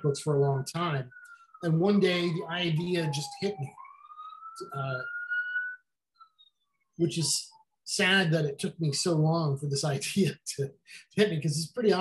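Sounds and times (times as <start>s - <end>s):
thin rising whistle tone: 1.0s - 7.6s.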